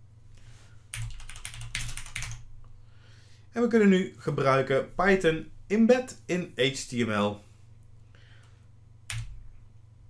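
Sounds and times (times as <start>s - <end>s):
keyboard key clicks: 9.1s - 9.4s.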